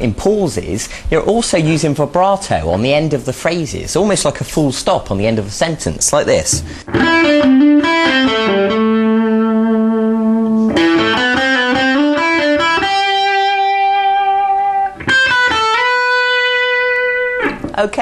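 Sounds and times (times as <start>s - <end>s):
electric guitar single notes: 6.6s - 18.0s.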